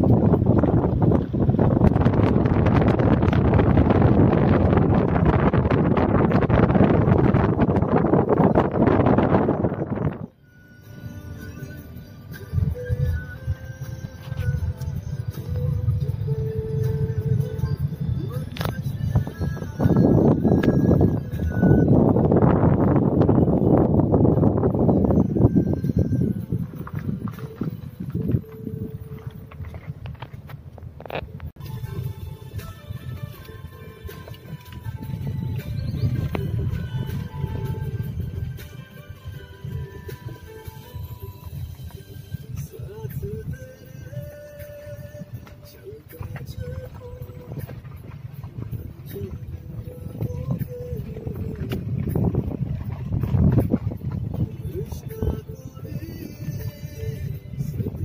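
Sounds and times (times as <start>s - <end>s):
car running and road noise: 0.0s - 58.0s
wind buffeting microphone: 0.0s - 58.0s.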